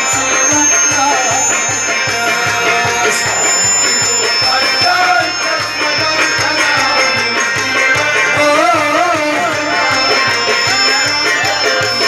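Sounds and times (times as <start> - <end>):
harmonium: 0.0 - 12.0.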